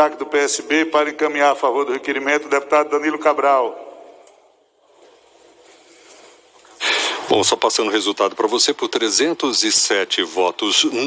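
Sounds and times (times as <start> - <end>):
faint steady hiss: 3.4 - 11.0
person speaking: 5.8 - 11.0
noisy intake of breath: 5.9 - 7.4.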